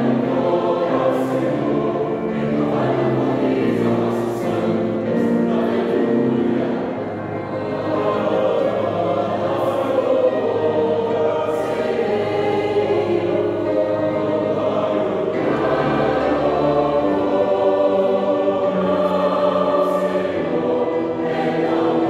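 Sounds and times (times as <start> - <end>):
mixed choir singing in harmony: 0.0 - 22.0.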